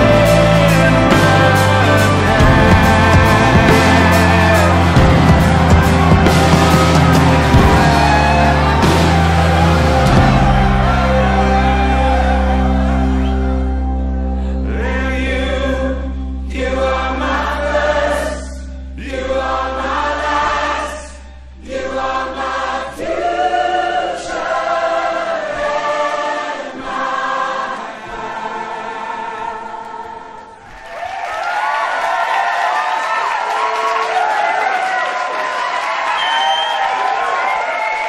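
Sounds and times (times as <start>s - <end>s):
crowd singing together: 0.0s - 30.8s
crowd cheering and whooping: 1.8s - 14.2s, 30.6s - 38.0s.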